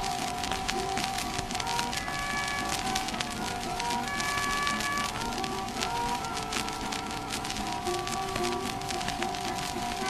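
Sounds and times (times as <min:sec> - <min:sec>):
guitar: 0:00.0 - 0:10.0
harmonica: 0:00.0 - 0:10.0
record surface crackle: 0:00.0 - 0:10.0.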